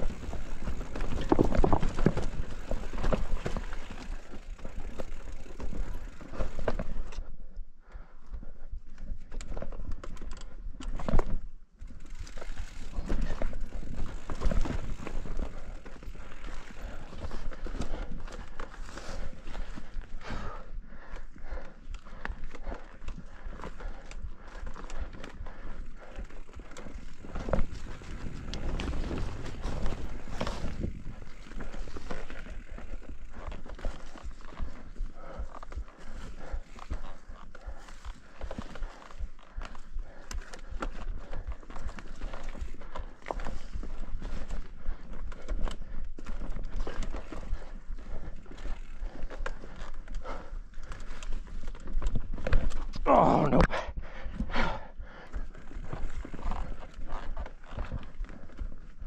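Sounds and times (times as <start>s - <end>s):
bike tyres crunching over ground: 0.0s - 7.1s, 10.9s - 53.5s, 54.6s - 59.0s
bike knocking and rattling: 0.0s - 7.3s, 8.8s - 53.0s, 54.2s - 59.0s.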